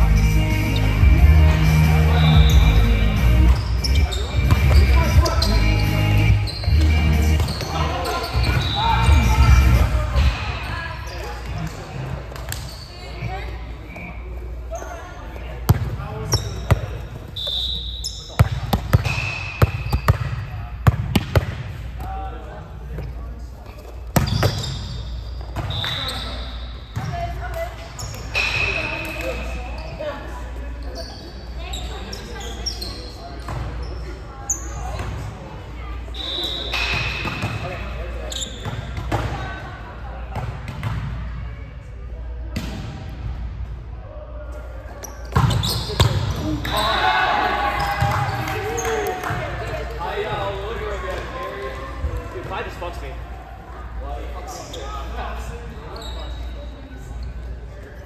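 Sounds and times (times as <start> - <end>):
sneakers squeaking on court: 1.9 - 21.8, 22.9 - 35.4, 36.0 - 39.6, 44.9 - 47.0, 54.4 - 58.0.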